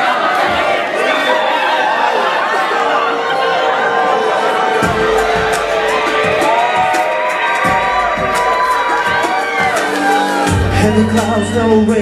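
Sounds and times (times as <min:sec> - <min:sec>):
audience cheering and whooping: 0:00.0 - 0:12.0
pop song over sound system: 0:03.1 - 0:12.0.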